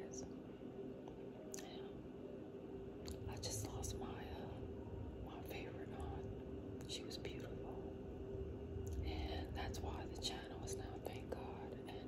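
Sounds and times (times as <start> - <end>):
faint steady hum: 0.0 - 12.0
person whispering: 9.0 - 12.0.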